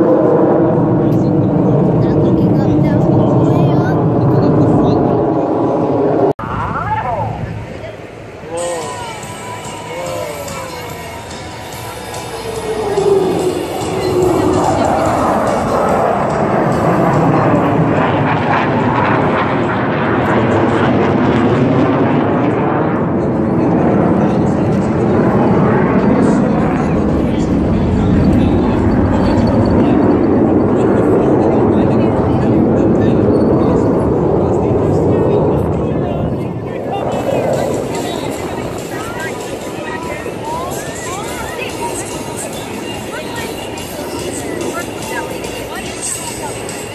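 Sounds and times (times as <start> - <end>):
crowd chatter: 0.0 - 46.9
jet engines roaring: 0.0 - 46.9.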